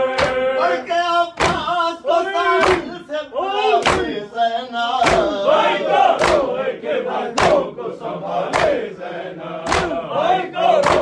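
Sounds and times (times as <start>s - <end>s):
mourners chanting a lament: 0.0s - 11.0s
hands striking chests: 9.7s - 10.0s.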